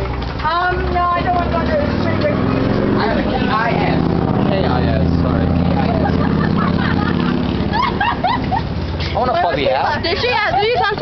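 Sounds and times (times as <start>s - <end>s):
vehicle engine running: 0.0s - 11.0s
indistinct talking: 0.4s - 11.0s.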